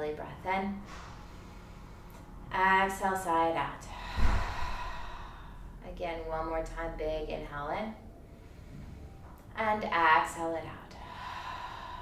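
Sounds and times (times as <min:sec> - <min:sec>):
woman sighing exhale: 0:04.0 - 0:05.6.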